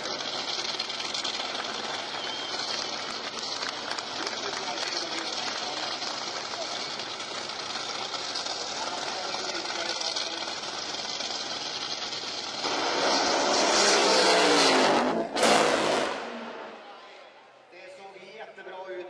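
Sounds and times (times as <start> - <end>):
dragster engine running loud: 0.0 - 16.8
loud engine burst: 0.0 - 17.0.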